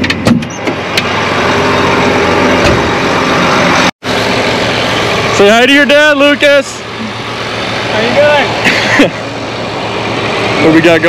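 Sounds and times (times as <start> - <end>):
tractor diesel engine idling: 0.5 - 11.0.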